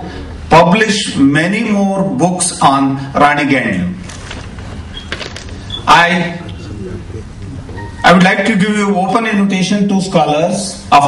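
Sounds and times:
man speaking into microphone: 0.0 - 4.0, 5.8 - 11.0.

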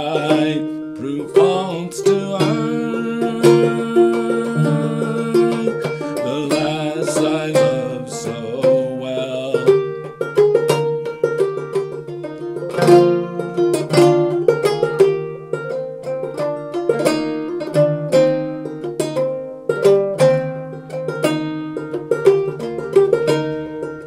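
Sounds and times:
banjo plucking and strumming: 0.0 - 24.0.

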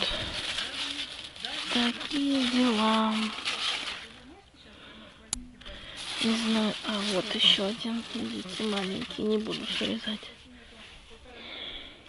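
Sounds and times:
plant leaves rustling: 0.0 - 4.4, 5.8 - 11.3
woman speaking: 0.0 - 11.8.

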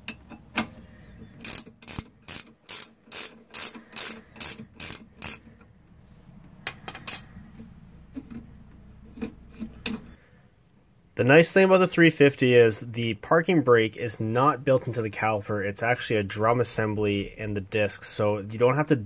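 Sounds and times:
ratcheting wrench clicking: 1.4 - 5.7.

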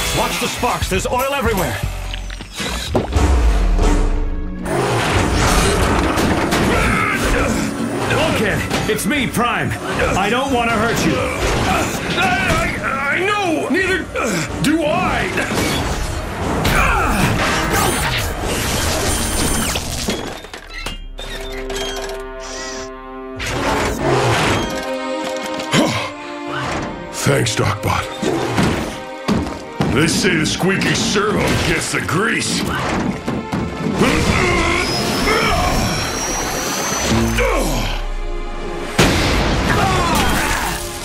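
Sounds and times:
background music: 0.0 - 41.0.

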